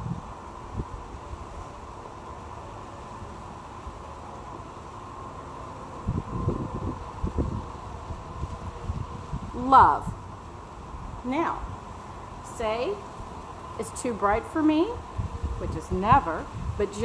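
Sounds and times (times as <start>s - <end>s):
wind buffeting microphone: 0.0s - 1.9s, 5.9s - 17.0s
outdoor background noise: 0.0s - 17.0s.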